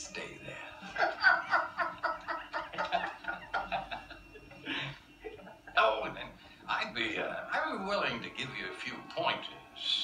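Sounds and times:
man cackling laughter: 1.0s - 5.5s.

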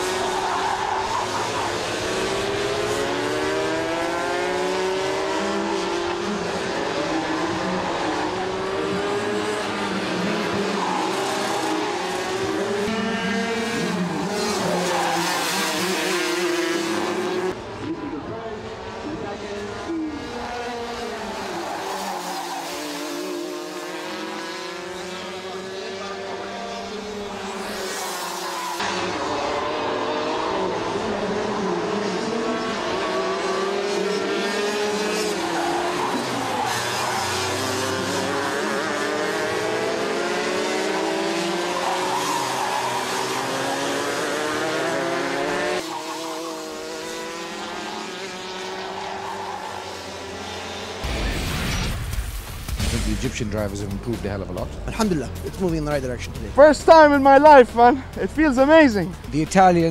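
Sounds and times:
kart engines revving: 0.0s - 51.6s, 53.0s - 59.9s.

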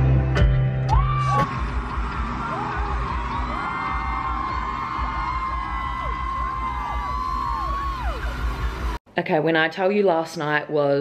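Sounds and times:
fans screaming and whooping: 0.9s - 9.0s.

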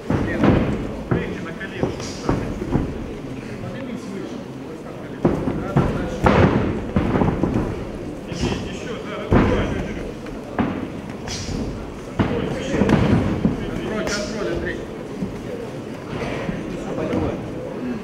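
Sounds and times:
bodies thudding on mat: 5.2s - 14.0s.

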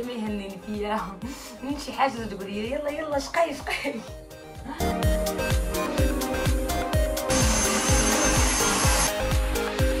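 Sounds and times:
dance music with steady beat: 0.0s - 10.0s
vacuum cleaner running: 7.2s - 9.4s.

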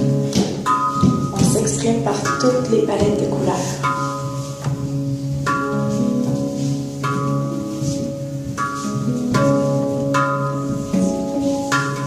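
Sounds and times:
handpan notes ringing: 0.0s - 12.0s.

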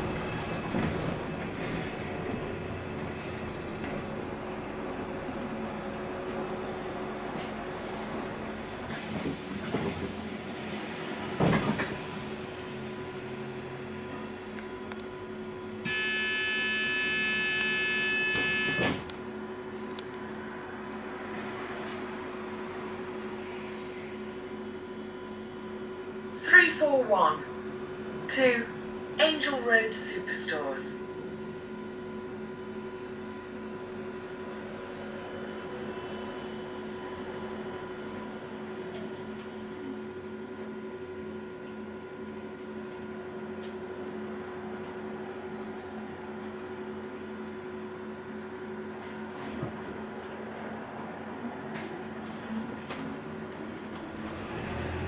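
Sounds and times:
bus engine hum: 0.0s - 55.0s
electronic buzzer tone: 15.8s - 19.0s.

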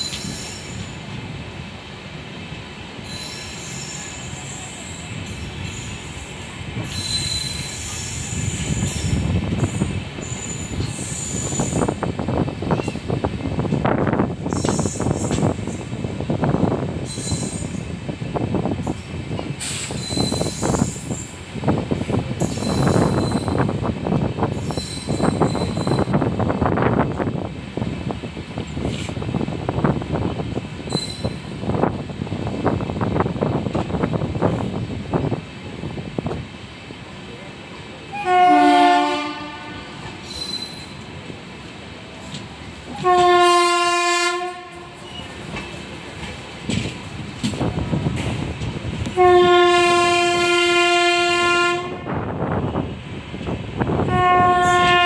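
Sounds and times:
train wheels clattering on track: 0.0s - 38.1s, 39.3s - 55.0s
wheel flange squeals: 3.0s - 11.9s, 17.0s - 17.8s, 19.6s - 21.4s, 22.4s - 23.7s, 24.6s - 26.3s, 30.8s - 31.5s, 40.1s - 41.1s, 45.0s - 45.8s
locomotive horn: 38.1s - 40.2s, 42.9s - 45.2s, 49.0s - 52.3s, 54.0s - 55.0s.

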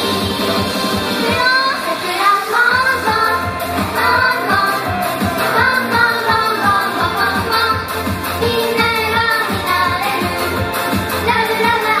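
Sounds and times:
amplified pop backing track: 0.0s - 12.0s
girls singing together: 1.2s - 7.8s, 11.2s - 12.0s.

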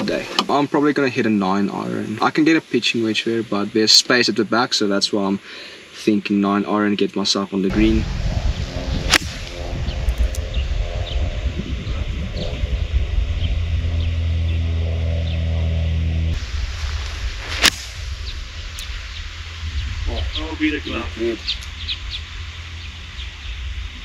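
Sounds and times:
low steady rumble: 7.7s - 24.0s
golf club striking ball: 9.1s - 10.4s, 17.6s - 18.1s.

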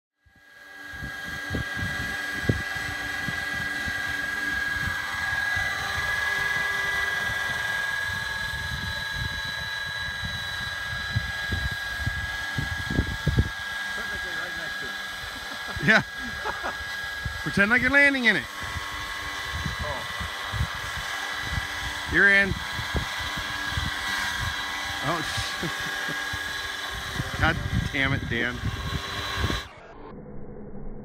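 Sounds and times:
model helicopter whine: 0.2s - 30.4s.

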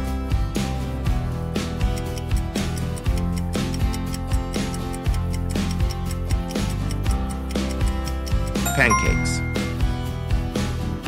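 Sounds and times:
background music with beat: 8.7s - 9.9s
bell-like ding: 8.7s - 10.0s.

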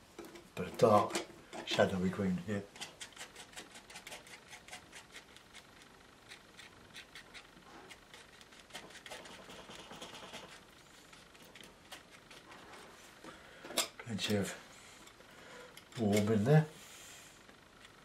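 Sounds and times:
palette knife scraping paint: 2.5s - 13.0s.

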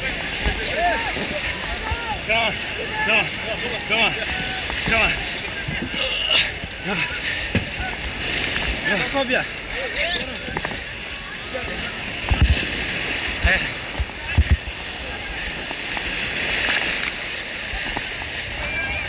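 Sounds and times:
people calling out: 0.0s - 8.1s
surf breaking: 0.0s - 19.0s
water splashing around a dinghy: 0.0s - 19.0s.

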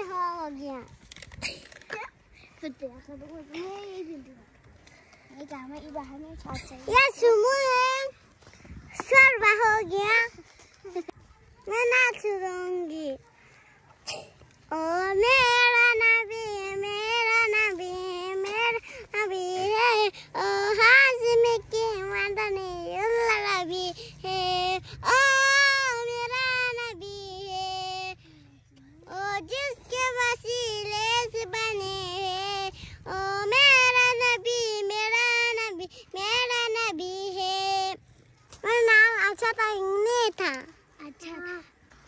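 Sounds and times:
girl singing: 14.7s - 38.0s, 38.6s - 41.6s.

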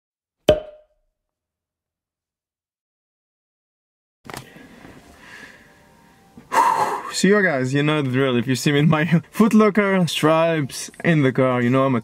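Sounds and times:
sharp knock-like hit with ringing: 0.5s - 0.9s.

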